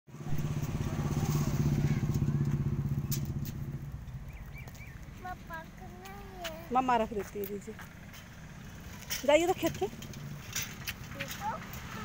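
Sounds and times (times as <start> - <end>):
vehicle engine humming: 0.1 - 12.0.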